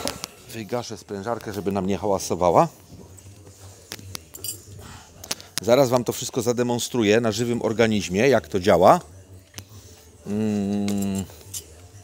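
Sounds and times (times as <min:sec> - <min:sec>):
light metallic clinks: 0:04.1 - 0:04.8.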